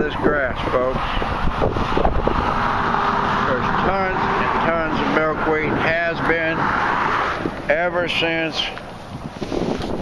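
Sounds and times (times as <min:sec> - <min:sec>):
highway traffic rushing: 0:00.0 - 0:10.0
wind rumbling on microphone: 0:00.0 - 0:10.0.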